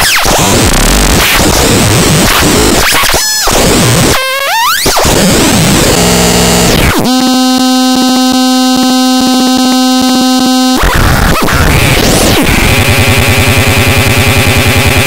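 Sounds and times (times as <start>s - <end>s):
buzzy held tone with clicks: 0.0s - 15.0s
harsh digital synthesizer noise: 0.0s - 15.0s.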